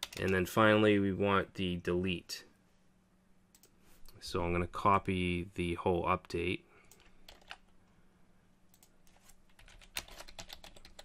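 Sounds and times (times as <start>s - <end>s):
keyboard typing: 0.0s - 0.4s, 6.9s - 7.7s, 8.7s - 11.0s.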